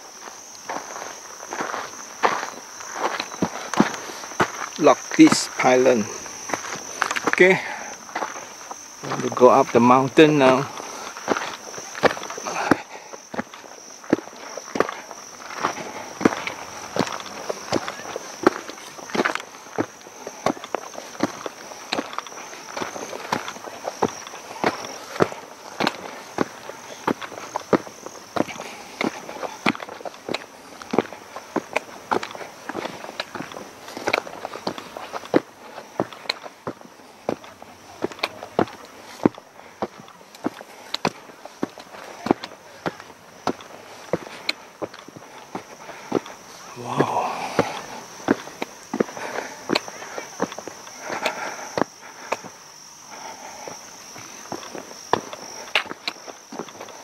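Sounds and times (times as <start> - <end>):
footsteps on rocky track: 0.0 - 57.0
high insect drone: 0.0 - 57.0.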